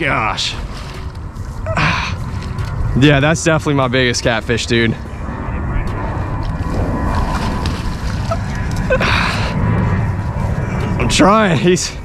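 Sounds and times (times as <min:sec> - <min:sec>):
steady low rumble: 0:00.0 - 0:12.0
fish thrashing in water: 0:06.7 - 0:09.0
water splash: 0:07.0 - 0:08.9.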